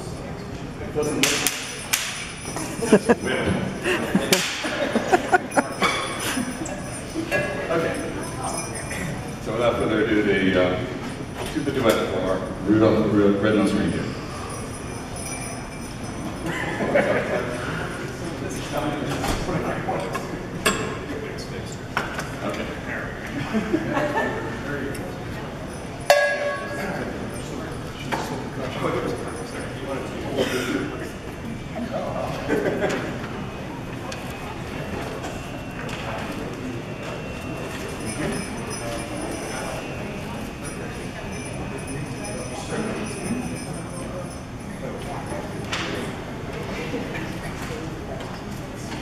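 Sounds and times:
murmur of voices: 0:00.0 - 0:49.0
room chatter: 0:00.0 - 0:49.0
instruments and music stands clinking: 0:00.9 - 0:10.0, 0:13.7 - 0:19.4, 0:25.7 - 0:30.0, 0:37.0 - 0:46.0
sleigh bells jingling: 0:01.0 - 0:10.4, 0:13.6 - 0:18.7, 0:37.2 - 0:45.4.

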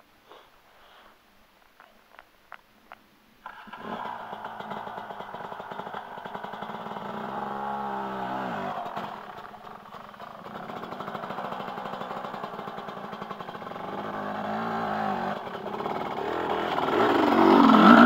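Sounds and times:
dirt bike engine running: 0:03.4 - 0:18.0.

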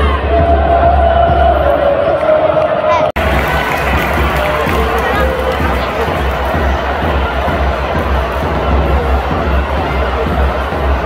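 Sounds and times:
stadium crowd singing: 0:00.0 - 0:11.0.

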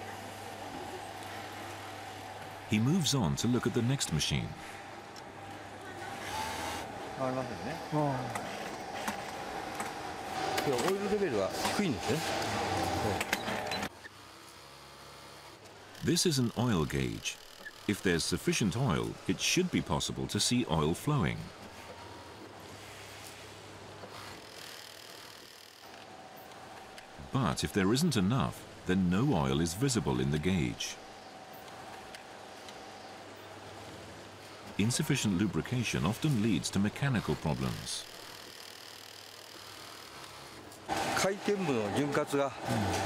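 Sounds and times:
low steady factory hum: 0:00.0 - 0:24.4, 0:25.8 - 0:38.2
people talking: 0:02.7 - 0:04.6, 0:07.2 - 0:08.4, 0:10.6 - 0:13.3, 0:16.0 - 0:21.5, 0:27.2 - 0:31.0, 0:34.8 - 0:38.0, 0:41.2 - 0:43.0
sewing machines hum: 0:05.7 - 0:18.0, 0:24.1 - 0:27.1, 0:37.0 - 0:43.0.

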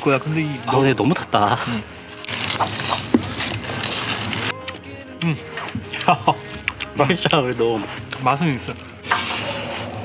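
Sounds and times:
aluminium foil crinkling: 0:00.0 - 0:10.0.

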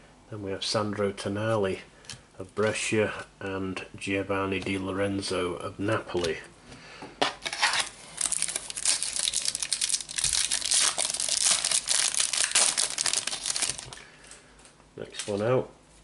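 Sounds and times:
foil wrapper crinkling and tearing: 0:07.4 - 0:14.0.

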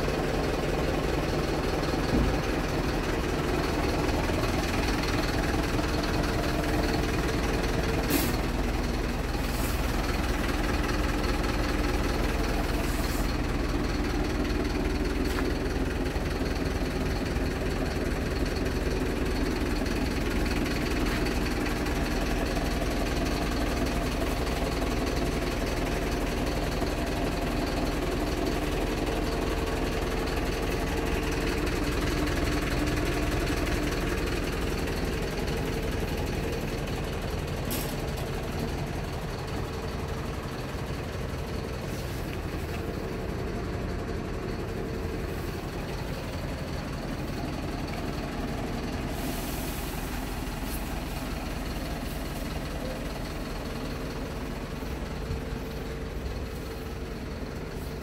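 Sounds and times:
diesel truck engine idling: 0:00.0 - 0:58.0.

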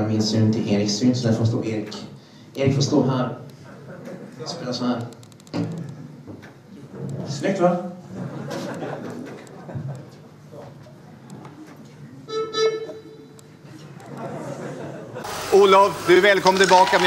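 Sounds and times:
stage noise: 0:15.2 - 0:17.0.

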